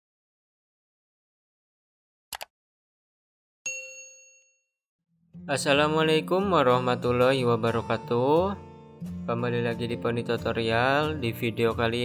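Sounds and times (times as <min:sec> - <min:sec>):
notification bell ding: 0:03.7 - 0:04.6.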